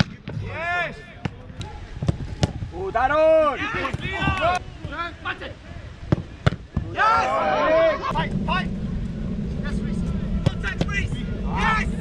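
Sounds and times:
footballs struck hard: 0.0 - 0.6
shouted calls: 6.9 - 8.2
steady low rumble: 7.7 - 12.0.

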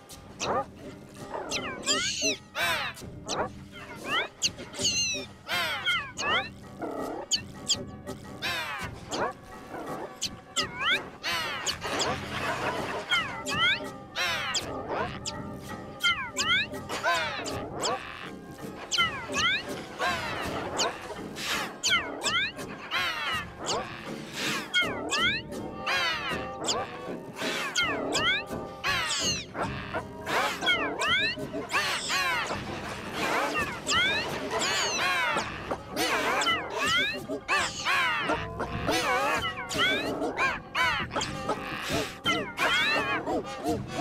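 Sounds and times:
squawks: 0.4 - 0.7, 1.3 - 44.0
imitated bird chirps and whistles: 1.5 - 6.6, 10.2 - 12.2, 16.0 - 16.7, 18.9 - 20.9, 21.8 - 25.4, 27.4 - 29.7, 30.3 - 32.5, 33.2 - 43.2.

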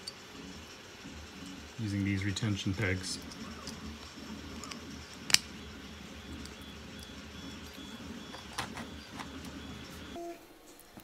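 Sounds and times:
low room hum: 0.0 - 11.0
plastic parts handled: 1.8 - 10.1
plastic parts clicking: 3.0 - 5.7, 6.3 - 9.6.

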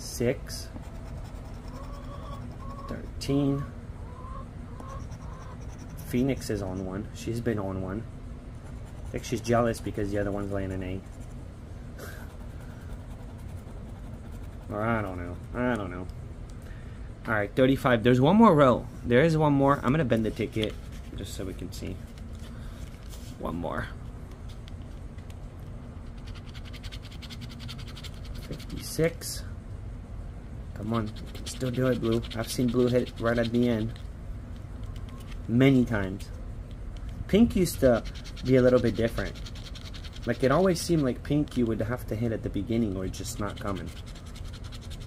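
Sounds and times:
coin scraping scratch card: 0.8 - 2.6, 5.0 - 6.2, 12.1 - 15.1, 26.0 - 28.9, 30.9 - 34.0, 37.8 - 41.7, 42.7 - 45.0
hen calling: 1.7 - 5.6.

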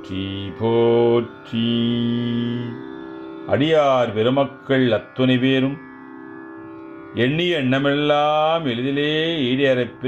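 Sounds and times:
man chanting a devotional hymn: 0.0 - 2.9, 3.5 - 5.8, 7.1 - 10.0
instrumental drone: 0.0 - 10.0.

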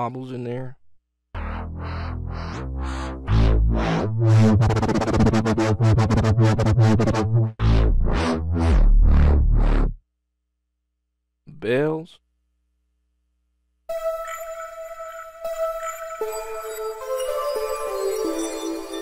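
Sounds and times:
wobbling synth bass: 1.4 - 10.0.

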